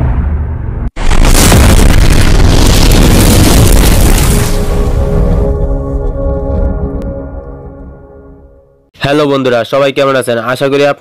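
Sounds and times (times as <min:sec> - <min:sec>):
deep explosion boom: 0:00.0 - 0:08.1.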